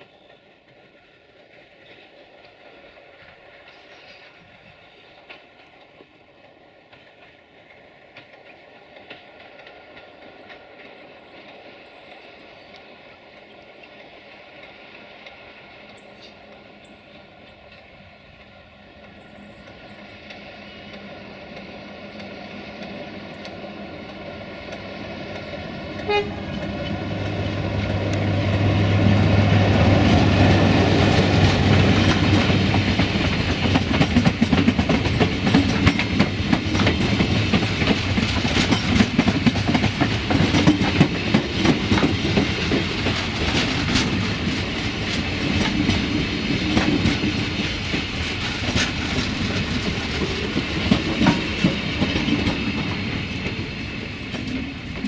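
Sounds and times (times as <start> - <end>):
diesel locomotive engine droning: 0.0 - 55.0
train wheels clattering over rail joints: 13.4 - 55.0.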